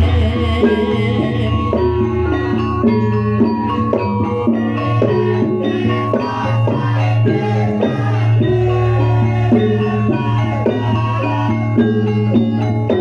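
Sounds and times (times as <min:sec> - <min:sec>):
gamelan music: 0:00.0 - 0:13.0.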